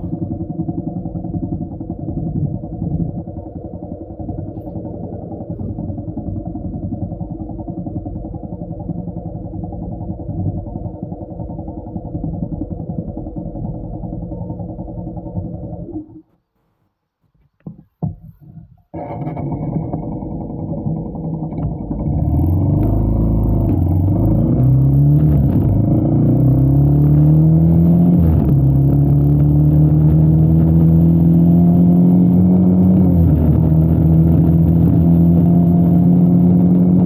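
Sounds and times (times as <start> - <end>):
motorcycle engine accelerating: 0.0 - 16.2, 18.9 - 37.0.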